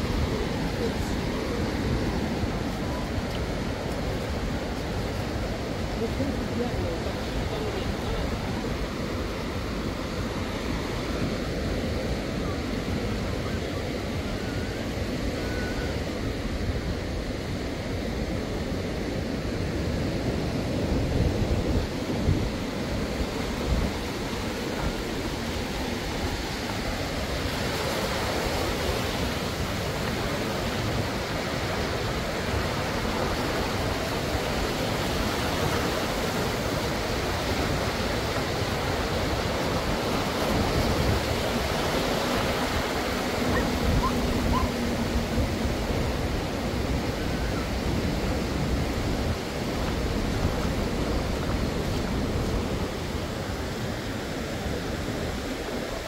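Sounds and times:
surf breaking on beach: 0:00.0 - 0:56.0
wind rumbling on microphone: 0:00.0 - 0:56.0.

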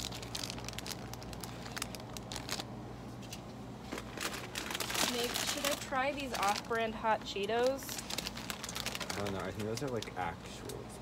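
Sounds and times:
plastic snack bags crinkling: 0:00.0 - 0:10.8
steady low hum: 0:00.0 - 0:11.0.

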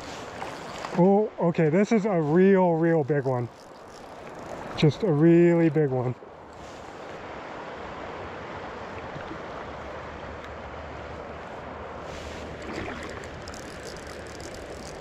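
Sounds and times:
faint ticks: 0:03.1 - 0:05.0, 0:12.9 - 0:15.0
water rushing over rocks: 0:12.4 - 0:15.0.

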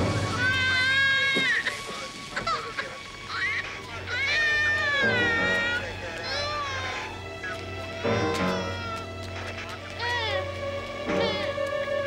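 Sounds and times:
background music: 0:00.0 - 0:12.0
baby crying: 0:00.2 - 0:02.6, 0:03.3 - 0:09.2, 0:10.0 - 0:11.9.

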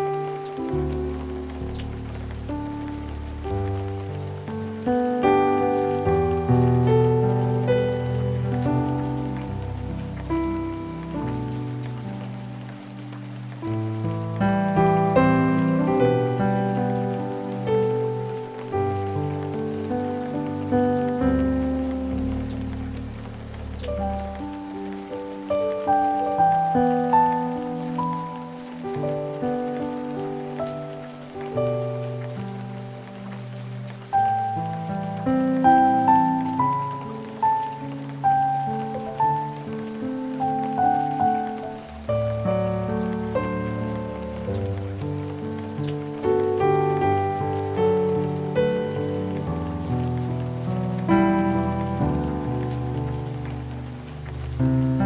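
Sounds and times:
rain falling: 0:00.0 - 0:55.0
solo piano hymn: 0:00.0 - 0:55.0.

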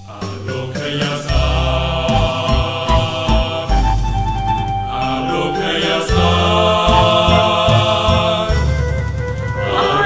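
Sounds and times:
chant-like sustained tones: 0:00.1 - 0:04.1, 0:04.9 - 0:08.9, 0:09.6 - 0:10.0
deep bass: 0:01.3 - 0:10.0.

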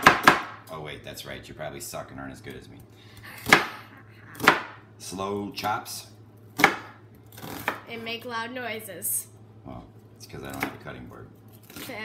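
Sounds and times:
knife chopping onion on countertop: 0:00.0 - 0:00.6, 0:03.4 - 0:03.7, 0:04.4 - 0:04.8, 0:06.6 - 0:07.9.

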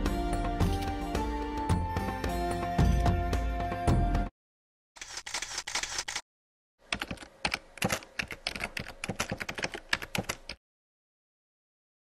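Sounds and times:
background music: 0:00.0 - 0:04.3
rapid irregular clicking: 0:06.8 - 0:10.6.

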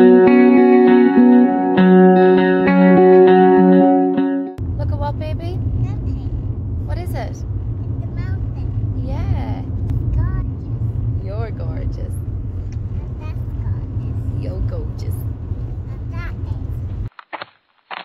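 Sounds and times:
car engine and tyre rumble: 0:04.6 - 0:17.1.

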